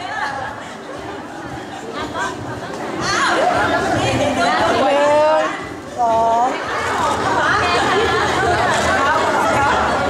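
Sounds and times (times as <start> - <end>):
several people talking: 0.0 - 10.0.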